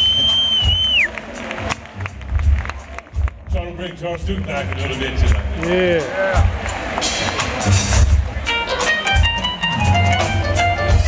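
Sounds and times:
high whistle: 0:00.0 - 0:01.1
audience applauding and cheering: 0:00.0 - 0:08.5
live band ending a number: 0:04.6 - 0:11.0.

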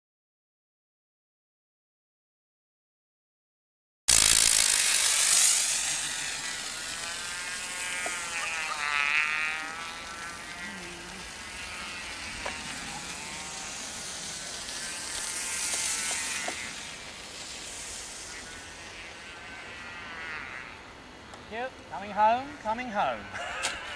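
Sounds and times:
rocket motor hissing: 0:04.1 - 0:21.4.

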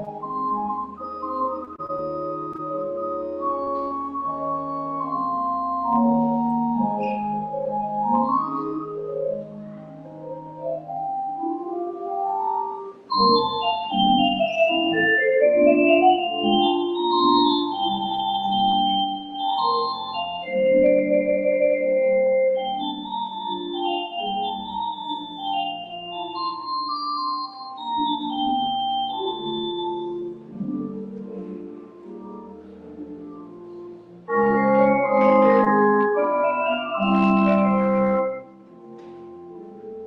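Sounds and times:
organ-like keyboard music: 0:00.0 - 0:40.0.

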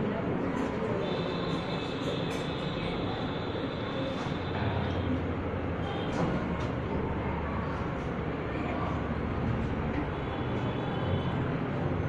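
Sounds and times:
faint murmuring voices: 0:00.0 - 0:12.0.

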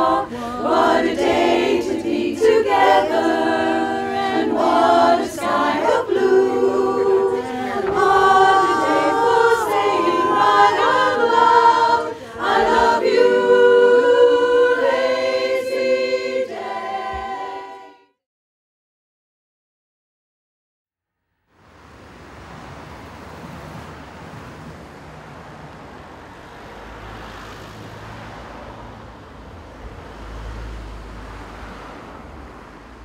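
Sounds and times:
women singing close harmony: 0:00.0 - 0:18.2.

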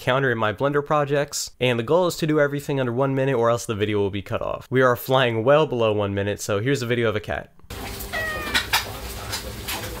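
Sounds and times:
cat chirp: 0:08.1 - 0:08.8.

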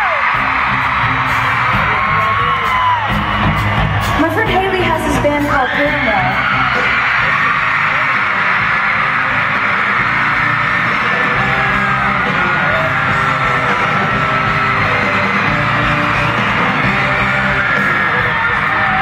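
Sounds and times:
crowd screaming and cheering: 0:00.0 - 0:19.0
live rock band playing: 0:00.0 - 0:19.0.

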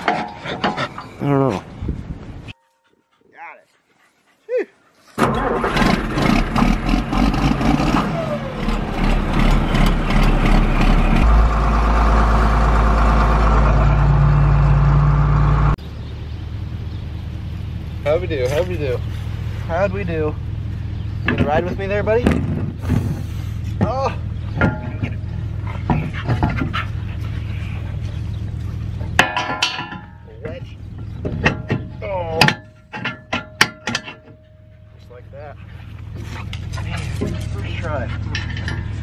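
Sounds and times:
tractor engine running: 0:05.2 - 0:39.0
cab rattling: 0:21.0 - 0:39.0.

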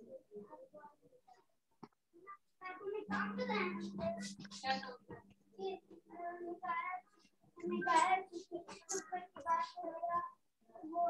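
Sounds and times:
child talking: 0:00.0 - 0:01.4, 0:02.2 - 0:11.0.

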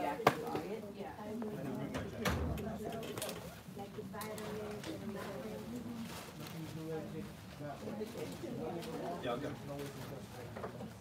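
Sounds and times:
murmur of overlapping voices: 0:00.0 - 0:11.0.

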